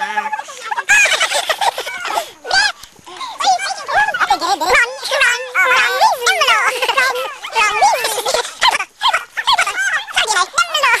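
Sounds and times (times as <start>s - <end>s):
high-pitched squeals and yelps: 0.0s - 11.0s.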